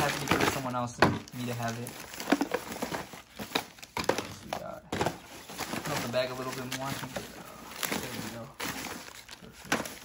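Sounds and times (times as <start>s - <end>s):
plastic trash bag crinkling: 0.0s - 10.0s.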